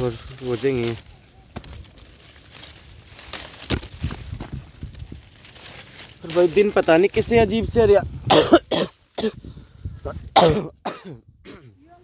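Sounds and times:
man coughing: 8.3s - 9.4s, 10.3s - 11.8s.

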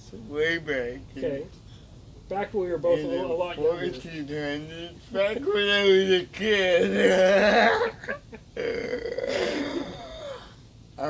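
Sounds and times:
man laughing breathily: 7.2s - 10.6s.

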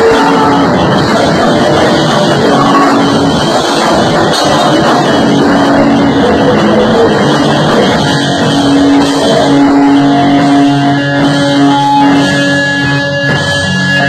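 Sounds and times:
drum kit: 0.0s - 14.0s
electric guitar: 0.0s - 14.0s.

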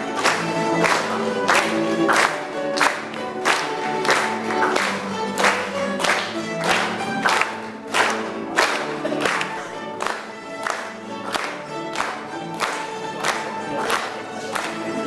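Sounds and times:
audience clapping along: 0.0s - 15.0s.

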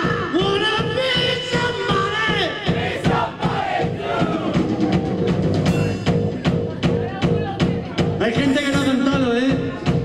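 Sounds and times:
drum kit beating: 0.0s - 10.0s
crowd shouting along: 2.7s - 5.2s.

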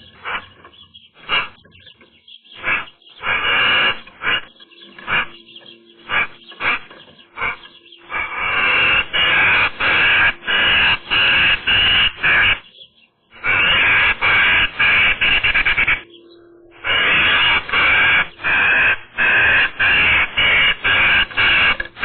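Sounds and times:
magpies harsh rasping calls: 0.0s - 22.0s.

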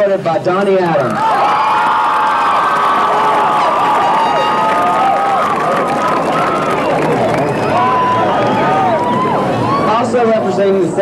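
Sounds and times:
stadium crowd cheering: 1.0s - 10.8s
high voices whooping and yelling: 1.2s - 10.1s.

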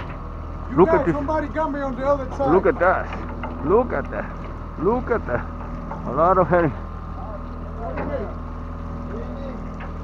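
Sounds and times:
boat engine idling: 0.0s - 10.0s.

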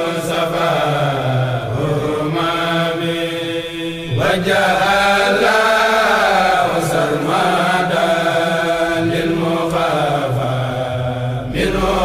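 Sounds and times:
man chanting religious poem: 0.0s - 12.0s.

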